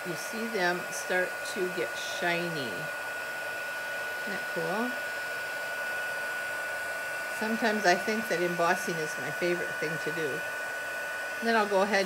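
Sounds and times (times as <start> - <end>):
heat tool fan hiss and whine: 0.0 - 12.0.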